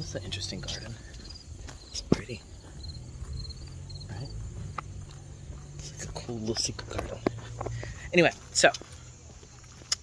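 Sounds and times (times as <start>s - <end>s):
crickets chirping: 0.0s - 10.0s.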